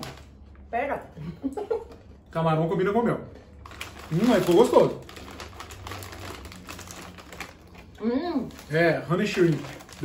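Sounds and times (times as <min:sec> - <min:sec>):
plastic snack bag crinkling: 0:00.0 - 0:00.4, 0:03.6 - 0:10.0
people chewing crunchy snacks: 0:03.5 - 0:10.0.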